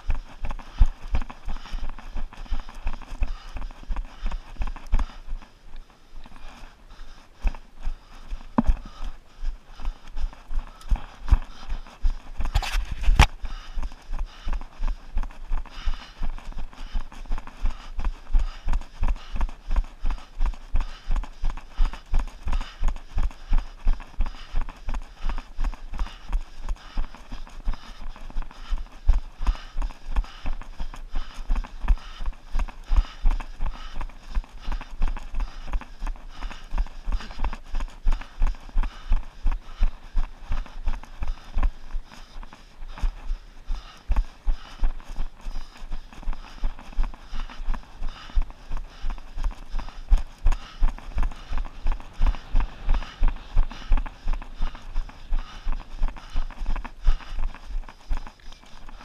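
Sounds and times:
running footsteps: 0:00.0 - 0:59.0.

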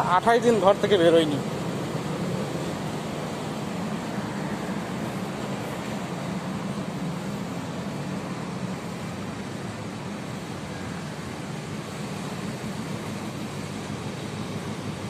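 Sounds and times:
distant traffic hum: 0:00.0 - 0:15.0.

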